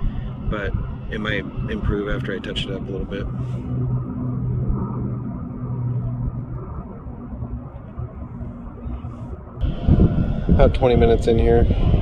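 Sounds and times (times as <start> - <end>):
low rumble: 0.0 - 12.0
motor engine droning: 0.0 - 12.0.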